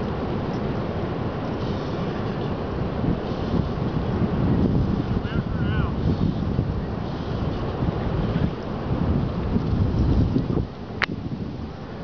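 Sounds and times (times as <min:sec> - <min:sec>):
surf washing: 0:00.0 - 0:12.0
wind buffeting microphone: 0:00.0 - 0:12.0.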